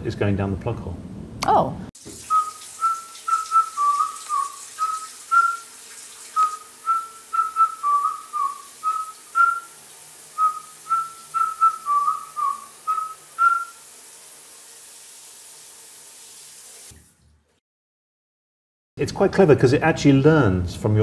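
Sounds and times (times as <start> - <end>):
whistled tune: 2.3 - 5.7, 6.4 - 9.8, 10.4 - 13.8.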